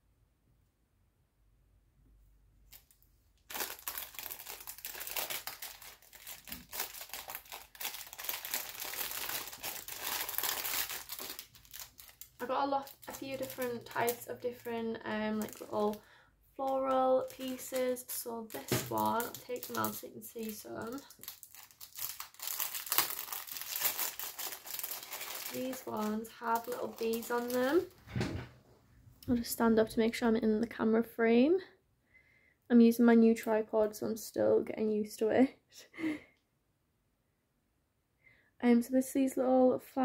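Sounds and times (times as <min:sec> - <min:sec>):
plastic packaging crinkling: 0:02.7 - 0:16.0, 0:16.6 - 0:28.0.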